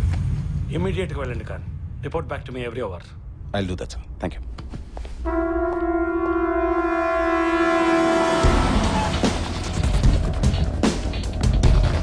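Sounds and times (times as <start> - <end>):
held brass note: 5.2 - 9.8
street noise: 7.4 - 12.0.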